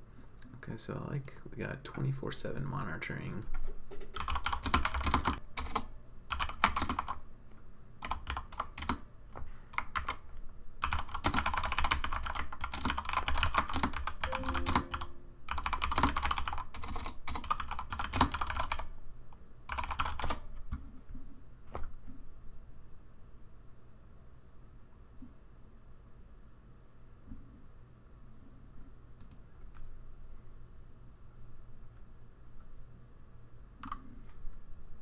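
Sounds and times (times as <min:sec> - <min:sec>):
typing on computer keyboard: 0:03.4 - 0:07.2, 0:08.0 - 0:09.1, 0:09.7 - 0:18.9, 0:19.7 - 0:20.8, 0:33.8 - 0:34.0.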